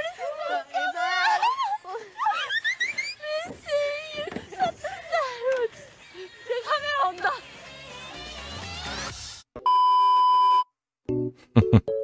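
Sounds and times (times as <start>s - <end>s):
electronic beep: 9.6s - 10.7s.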